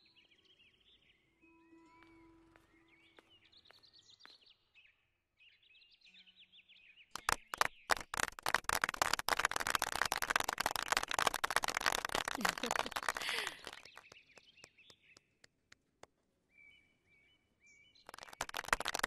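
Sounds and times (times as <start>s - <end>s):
small birds chirping: 0.0s - 8.1s, 12.1s - 19.0s
audience applause: 7.2s - 14.8s, 18.1s - 19.0s.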